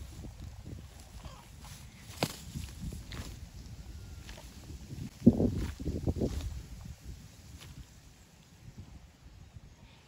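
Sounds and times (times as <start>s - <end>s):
scuffing and rustling in grass: 0.0s - 8.6s.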